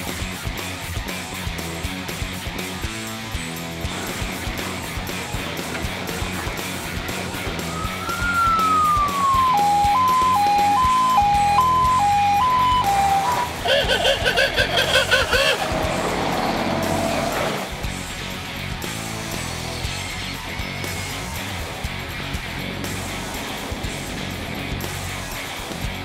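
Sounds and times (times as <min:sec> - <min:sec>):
background music: 0:00.0 - 0:26.0
fast-warbling siren: 0:07.5 - 0:14.1
two-tone hi-lo siren: 0:07.6 - 0:13.8.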